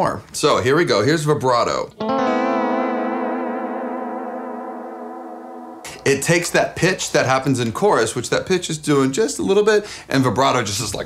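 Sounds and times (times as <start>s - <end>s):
electric guitar strum with vibrato: 2.0s - 6.8s.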